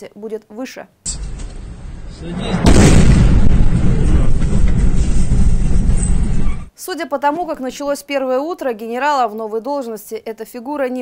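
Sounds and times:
large explosion rumble: 1.6 - 6.4.

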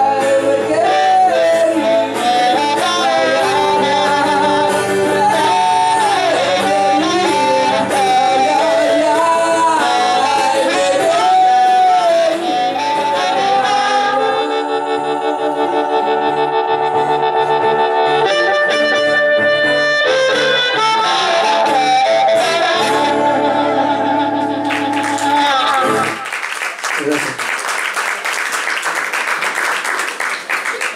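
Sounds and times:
blues harmonica: 0.0 - 26.2
strummed acoustic guitar: 0.0 - 26.2
audience applause: 24.6 - 30.9.

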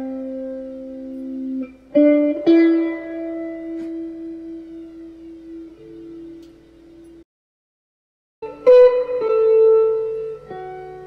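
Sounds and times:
slow plucked guitar: 0.0 - 7.2, 8.4 - 11.0.

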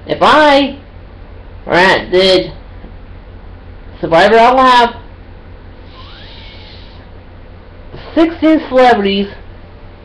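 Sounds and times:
low hum: 0.0 - 8.2
faint hiss: 5.8 - 7.1.

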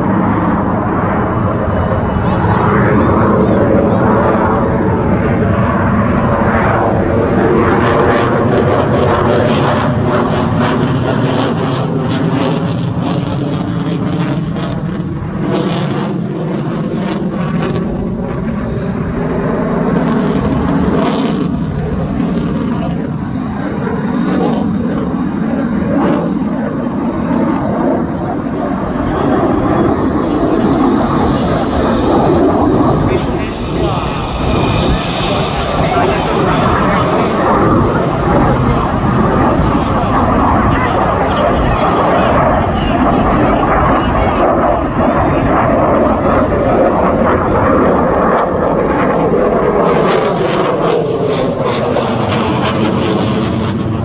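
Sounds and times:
jet flying overhead: 0.0 - 54.0.

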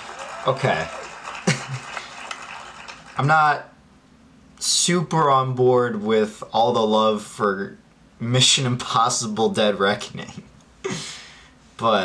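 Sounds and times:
man chuckling: 1.4 - 2.0.

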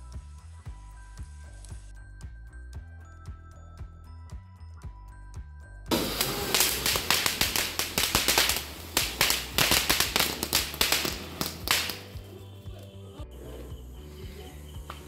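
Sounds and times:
background music with a beat: 0.0 - 13.0
fireworks hissing and crackling: 5.9 - 12.3.

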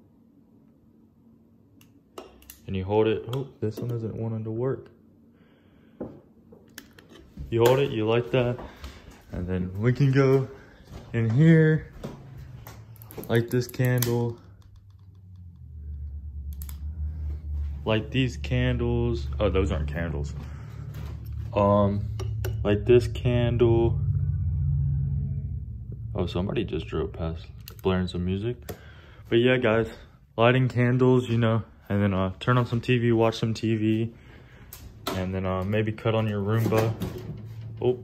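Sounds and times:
faint low hum: 0.0 - 38.0
phone microphone handling rumble: 7.0 - 30.0.

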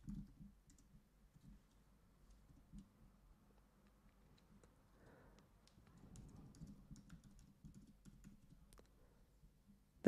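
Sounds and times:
faint typing on keyboard: 0.0 - 9.8.

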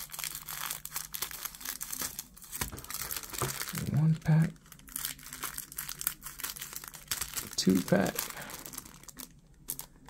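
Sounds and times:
plastic wrap crinkling: 0.0 - 10.0.

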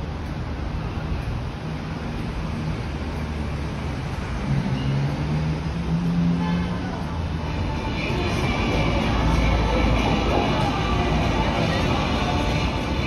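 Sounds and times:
distant traffic: 0.0 - 13.0.

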